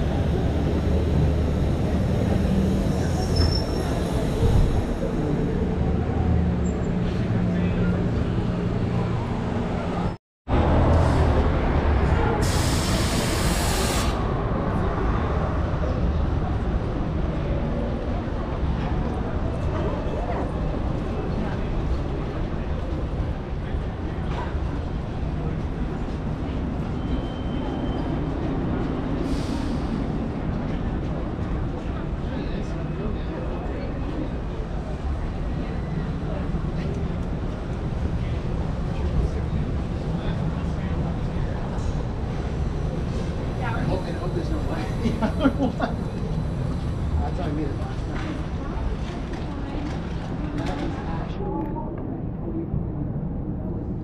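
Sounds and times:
passers-by talking indistinctly: 0:00.0 - 0:54.0
traffic and buses rumbling: 0:00.0 - 0:54.0
loud hiss: 0:12.4 - 0:14.3.

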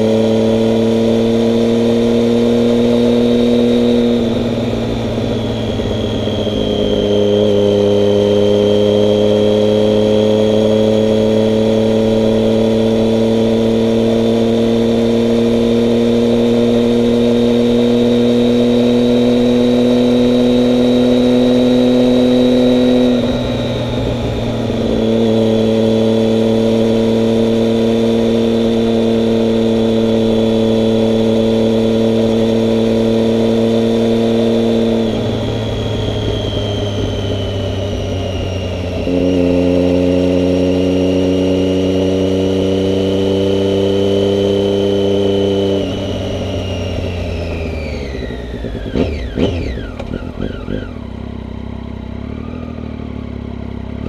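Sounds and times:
motorcycle engine running: 0:00.0 - 0:54.0.

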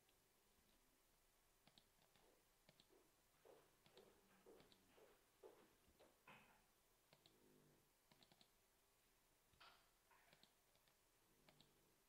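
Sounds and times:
computer mouse clicks: 0:01.6 - 0:02.9, 0:03.8 - 0:04.9, 0:07.1 - 0:07.4, 0:08.1 - 0:08.6, 0:09.5 - 0:11.8.

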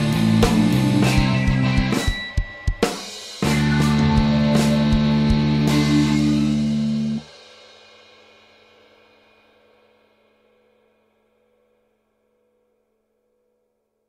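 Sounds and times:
heavy metal chord with drums: 0:00.0 - 0:10.6.

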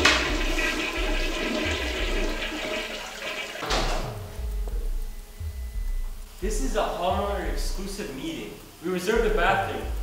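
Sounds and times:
toilet flushing: 0:00.0 - 0:04.4.

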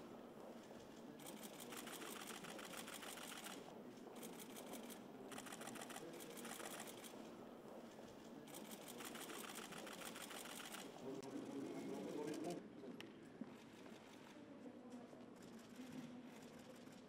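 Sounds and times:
murmur of voices: 0:00.0 - 0:17.0
camera shutters clicking: 0:01.2 - 0:03.6, 0:04.2 - 0:07.2, 0:08.5 - 0:10.9.

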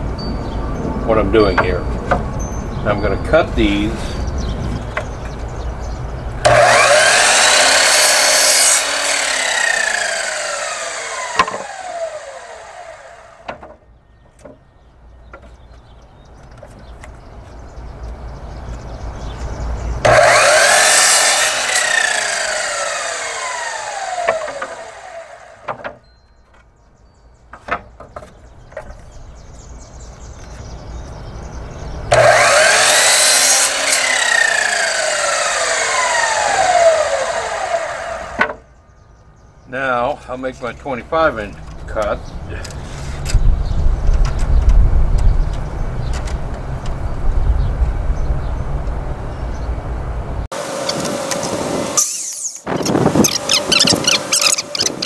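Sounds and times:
saw blade spinning down: 0:06.4 - 0:13.4, 0:20.0 - 0:25.7, 0:32.1 - 0:38.6, 0:50.6 - 0:55.0
miter saw cutting wood: 0:06.4 - 0:13.6, 0:20.0 - 0:26.0, 0:32.1 - 0:38.7, 0:50.5 - 0:55.0.

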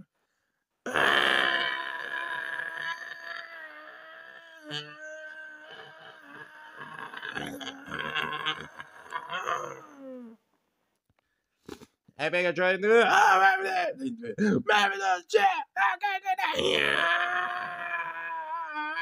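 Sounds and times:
person's long drawn-out cry: 0:01.4 - 0:10.4, 0:16.5 - 0:19.0.

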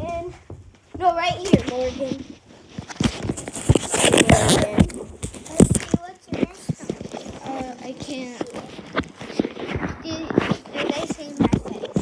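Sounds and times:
children's voices: 0:00.0 - 0:02.4, 0:03.9 - 0:12.0
thumps and knocks: 0:00.0 - 0:12.0.

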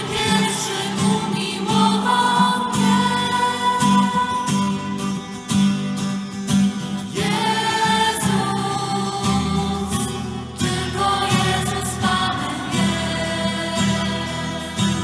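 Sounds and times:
group singing worship song: 0:00.0 - 0:05.3, 0:07.0 - 0:15.0.

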